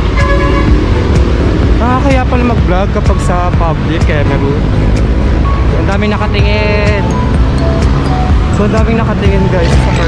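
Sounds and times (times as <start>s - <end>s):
heavy road traffic: 0.0s - 10.0s
vehicle horn toot: 0.1s - 0.8s.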